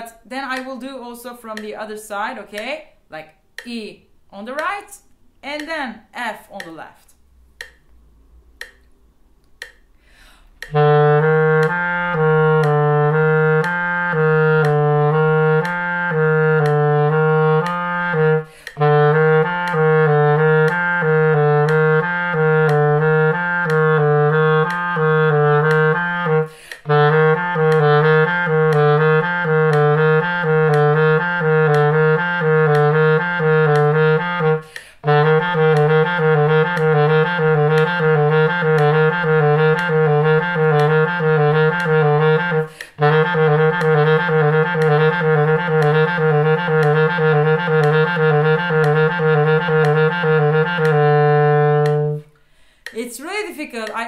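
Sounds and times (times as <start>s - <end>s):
clarinet playing exercise: 9.6s - 54.0s
breath: 9.9s - 10.6s, 18.5s - 18.8s, 26.5s - 26.9s, 34.6s - 35.0s, 42.7s - 43.0s, 52.4s - 53.0s.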